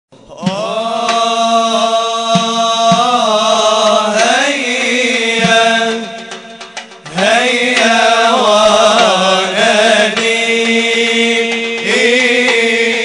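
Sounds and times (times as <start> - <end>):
men chanting in held notes: 0.2 - 13.0.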